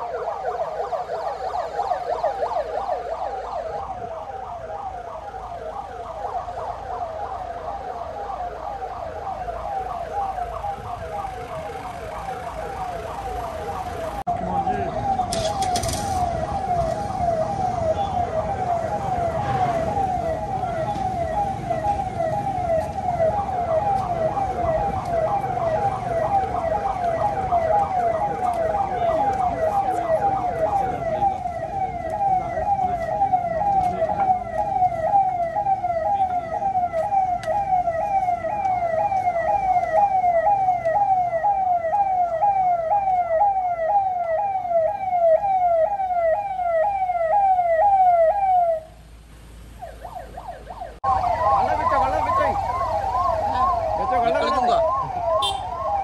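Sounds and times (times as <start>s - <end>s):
police siren wailing: 0.0s - 56.0s
vehicle engines rumbling: 0.0s - 56.0s.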